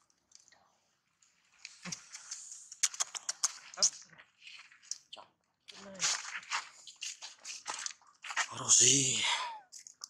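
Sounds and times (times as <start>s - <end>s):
monkey chewing food crunching: 1.5s - 8.5s.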